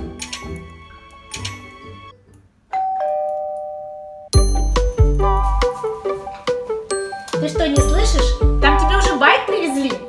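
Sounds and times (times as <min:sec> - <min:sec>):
background music: 0:00.0 - 0:02.7, 0:04.3 - 0:10.0
two-note doorbell chime: 0:02.7 - 0:05.8.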